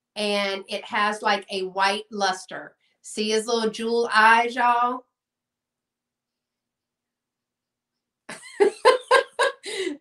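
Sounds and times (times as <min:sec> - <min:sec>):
woman speaking: 0:00.2 - 0:05.1, 0:08.3 - 0:10.0.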